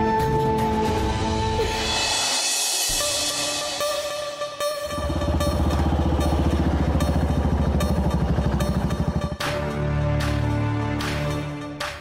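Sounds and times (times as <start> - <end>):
motorcycle engine running: 4.8 - 9.7.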